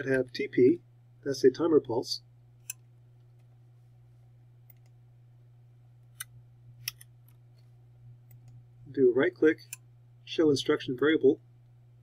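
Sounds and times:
low electrical hum: 0.0 - 12.0
computer mouse clicks: 4.7 - 5.0, 8.3 - 8.6.

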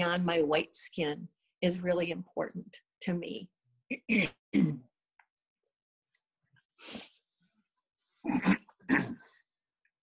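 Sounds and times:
person clearing throat: 4.0 - 4.9, 8.2 - 9.3
person sniffing: 6.8 - 7.2.

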